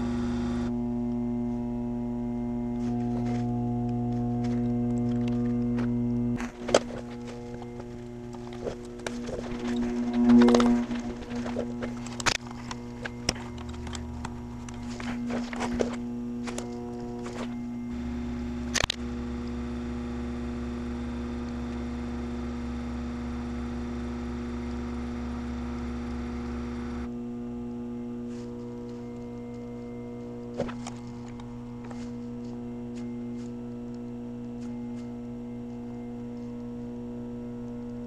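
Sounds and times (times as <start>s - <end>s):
pump low hum: 0.0s - 38.0s.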